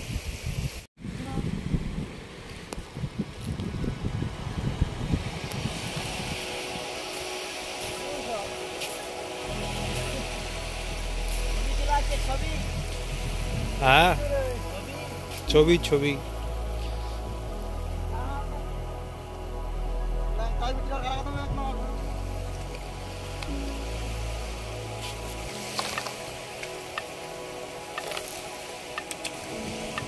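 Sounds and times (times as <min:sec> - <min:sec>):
wind buffeting microphone: 0:00.0 - 0:20.1.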